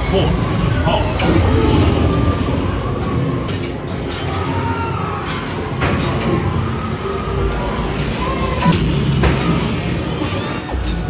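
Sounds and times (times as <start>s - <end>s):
dense mechanical rumble: 0.0s - 4.1s, 5.7s - 11.0s.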